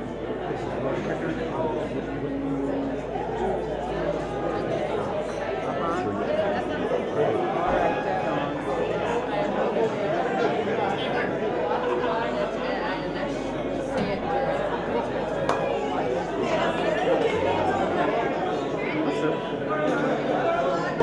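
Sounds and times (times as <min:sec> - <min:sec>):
crowd chatter: 0:00.0 - 0:21.0.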